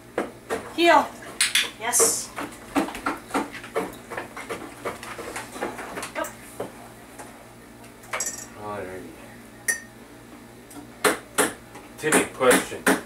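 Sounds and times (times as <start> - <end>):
dishes and cutlery clinking: 8.1 - 8.5.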